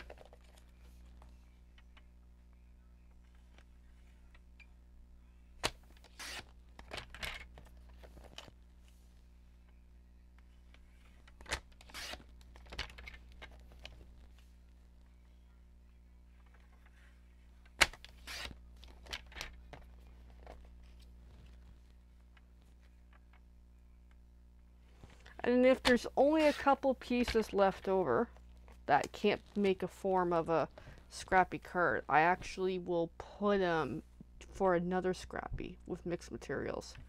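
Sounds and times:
blade scratching through paper: 0:18.1 - 0:18.6.

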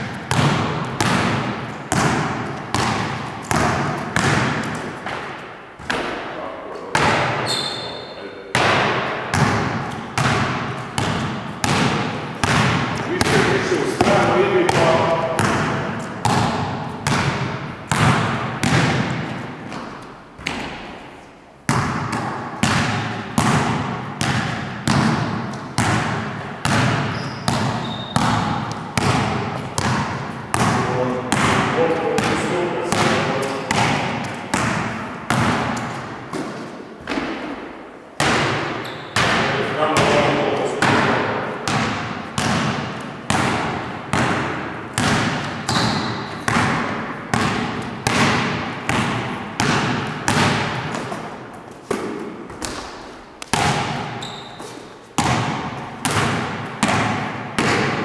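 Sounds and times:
basketball dribbling on wooden floor: 0:00.0 - 0:06.2, 0:06.9 - 0:07.8, 0:08.6 - 0:21.0, 0:21.7 - 0:58.0.

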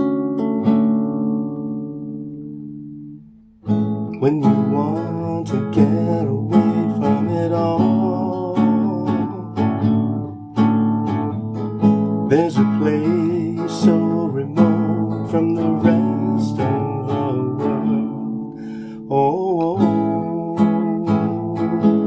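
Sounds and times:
acoustic guitar strumming chords: 0:00.0 - 0:22.0
man singing: 0:04.2 - 0:10.0, 0:12.2 - 0:22.0.

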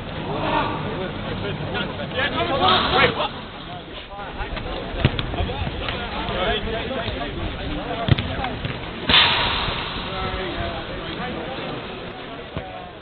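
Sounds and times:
football kicked thuds: 0:08.0 - 0:08.8
sudden rush of noise: 0:09.1 - 0:11.1.

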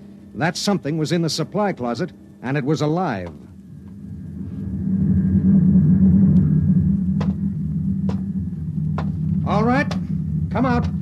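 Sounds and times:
low spaceship drive rumble: 0:00.0 - 0:11.0.

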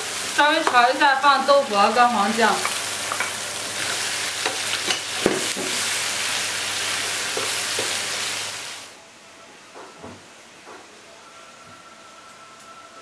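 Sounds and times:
food sizzling in a wok: 0:00.0 - 0:09.0.

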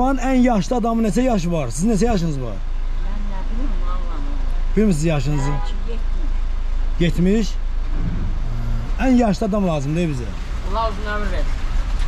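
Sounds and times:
people talking: 0:00.0 - 0:06.4, 0:07.0 - 0:07.6, 0:08.5 - 0:11.5
car engine idling: 0:00.0 - 0:12.0.

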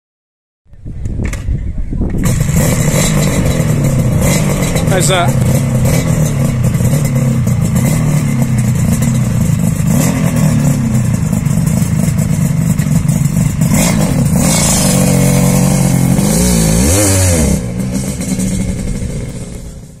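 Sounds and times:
two-stroke motorcycle engine revving: 0:02.2 - 0:20.0.

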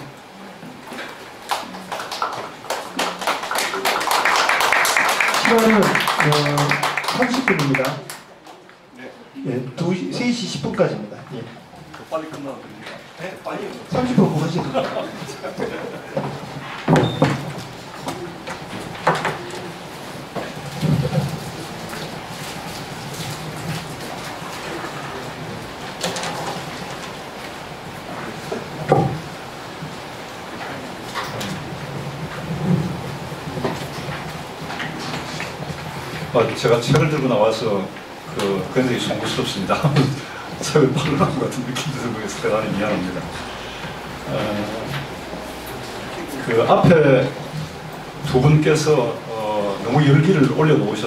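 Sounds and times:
audience applause: 0:01.1 - 0:08.5
papers rustling: 0:11.4 - 0:43.3.

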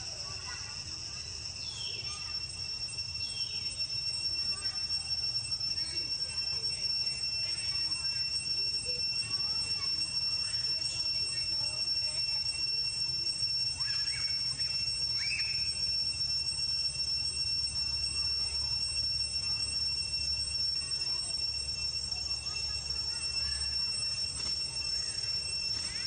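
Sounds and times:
high-pitched insect drone: 0:00.0 - 0:26.0.

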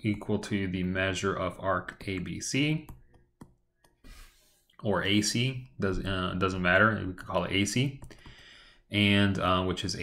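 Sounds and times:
person speaking: 0:00.0 - 0:03.2, 0:04.1 - 0:08.3.

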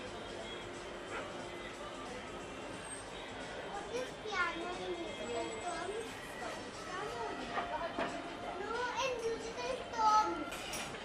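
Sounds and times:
young boy talking: 0:03.7 - 0:06.2, 0:08.6 - 0:10.5.

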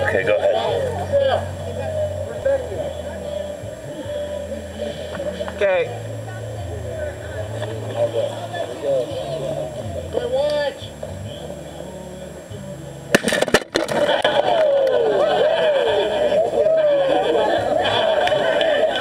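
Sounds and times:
excited voices: 0:00.0 - 0:11.6, 0:13.8 - 0:19.0.

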